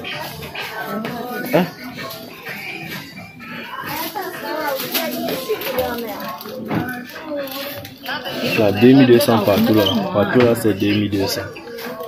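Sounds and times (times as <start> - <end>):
background music: 0.0 - 12.0
voices talking: 0.0 - 12.0.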